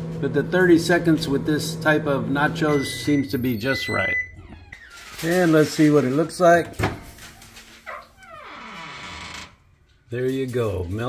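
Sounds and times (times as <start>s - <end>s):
door hinge squealing: 3.9s - 5.1s, 7.8s - 9.6s.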